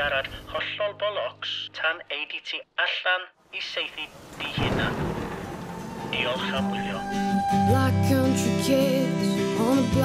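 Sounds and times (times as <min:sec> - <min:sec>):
thunder rumbling: 0:04.2 - 0:07.5.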